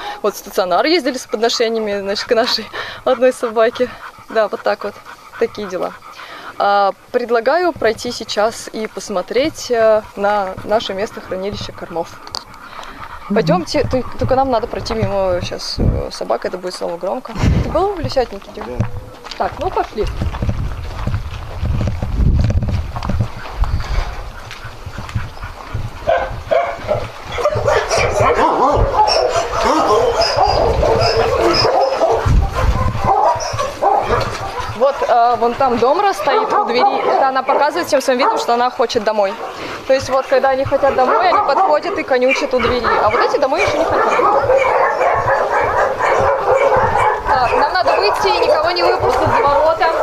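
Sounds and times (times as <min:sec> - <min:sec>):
dogs barking: 0:00.0 - 0:17.2, 0:24.1 - 0:50.0.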